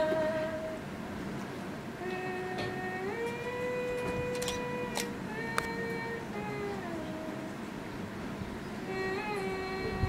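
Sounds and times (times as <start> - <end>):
woman humming: 0.0 - 0.9, 2.0 - 7.7, 8.8 - 10.0.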